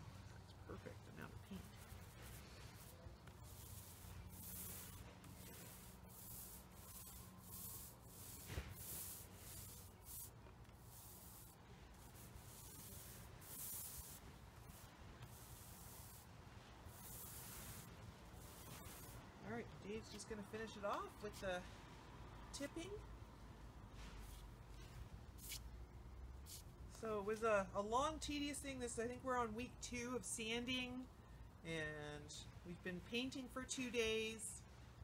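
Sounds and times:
paint roller and brush swishing: 1.1 - 19.3, 24.0 - 25.7.

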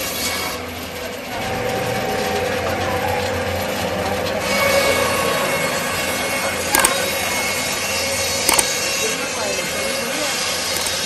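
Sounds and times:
bandsaw cutting meat and bone: 6.7 - 7.1, 8.5 - 8.9
sharp click: 6.8 - 7.1, 8.5 - 8.8, 10.8 - 11.0.

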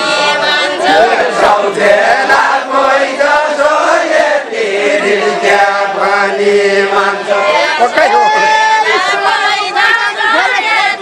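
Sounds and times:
group singing unaccompanied: 0.0 - 8.0, 8.6 - 11.0.

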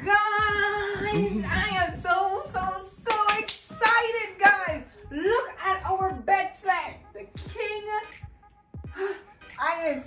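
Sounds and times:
person singing: 0.0 - 2.0
hand claps: 3.1 - 4.6.

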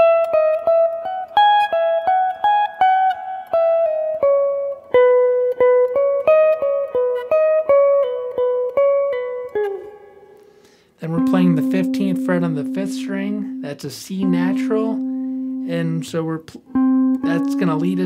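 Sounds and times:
electric guitar lead phrase: 0.0 - 18.0.

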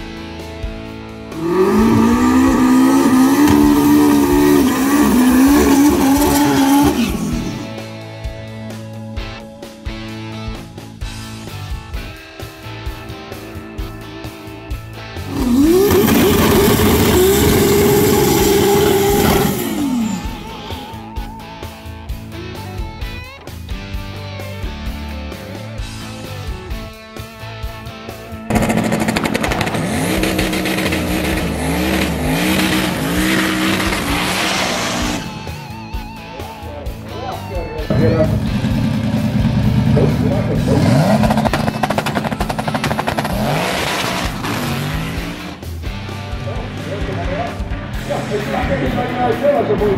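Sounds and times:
rock music: 0.0 - 49.9
car engine revving: 1.2 - 8.0, 12.7 - 21.2, 28.5 - 37.0, 37.8 - 49.9.

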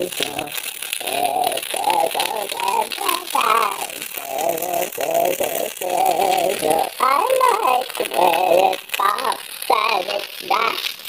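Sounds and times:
filtered warbling voice chanting: 0.0 - 11.0.

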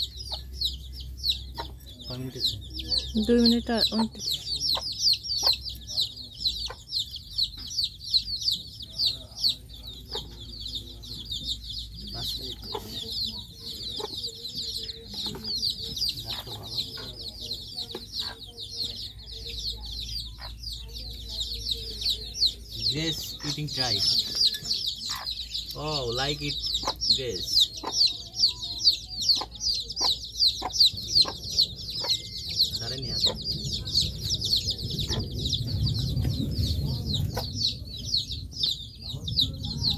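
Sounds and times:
small birds chirping: 0.0 - 39.9.

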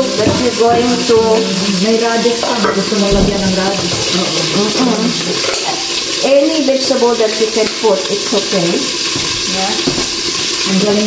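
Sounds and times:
women talking: 0.0 - 10.0, 10.6 - 11.0
food sizzling in a pan: 0.0 - 11.0.

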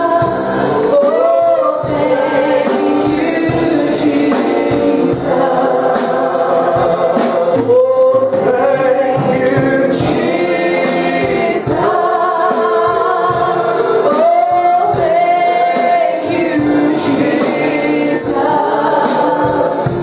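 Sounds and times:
group singing gospel song: 0.0 - 20.0.

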